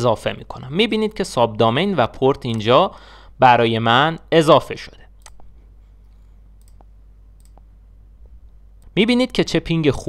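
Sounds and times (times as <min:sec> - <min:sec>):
low steady hum: 0:00.0 - 0:10.0
computer mouse clicking: 0:05.2 - 0:05.5, 0:06.6 - 0:07.7.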